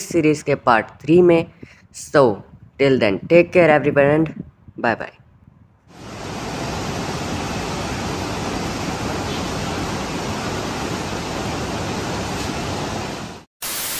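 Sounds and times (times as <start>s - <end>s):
river white water rushing: 5.9s - 13.4s.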